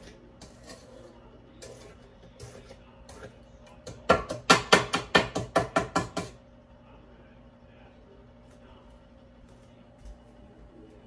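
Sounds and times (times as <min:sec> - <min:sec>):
mixer beater rapping metal bowl: 0:00.0 - 0:06.4.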